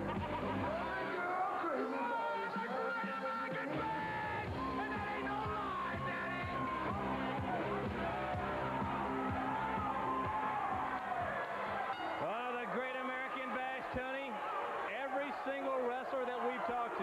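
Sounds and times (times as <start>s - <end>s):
ring entrance music: 11.9s - 12.3s
man talking: 12.2s - 17.0s.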